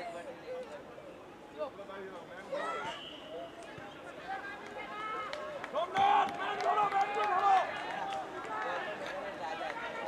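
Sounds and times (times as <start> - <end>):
voices calling and shouting: 0.0 - 10.0.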